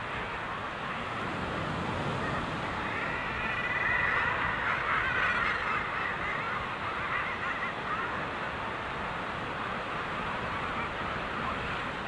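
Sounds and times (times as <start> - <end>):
sea noise: 0.0 - 12.0
seabirds calling in a colony: 0.0 - 12.0
wind: 0.0 - 12.0.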